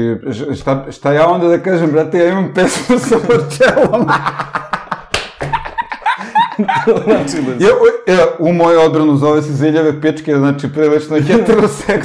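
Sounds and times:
man laughing heartily: 2.6 - 7.7
hand clap: 4.7 - 6.0.

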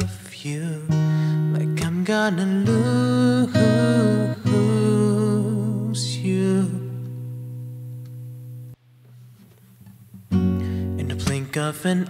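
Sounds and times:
acoustic guitar chord ringing: 0.0 - 8.8, 10.3 - 12.0.

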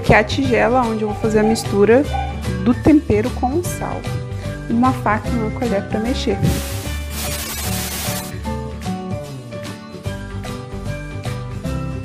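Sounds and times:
background music: 0.0 - 12.0
tv static hiss: 6.6 - 8.3.

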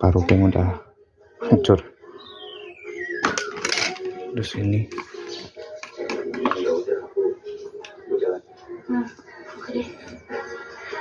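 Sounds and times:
plastic gadget clicks: 3.2 - 4.1
indistinct background voices: 3.7 - 11.0.

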